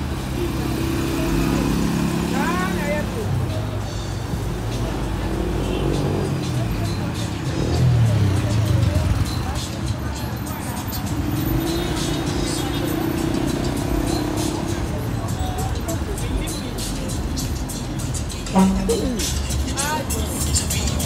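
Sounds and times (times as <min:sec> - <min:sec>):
music: 0:00.0 - 0:21.0
people's voices: 0:00.0 - 0:21.0
steady traffic: 0:00.0 - 0:21.0.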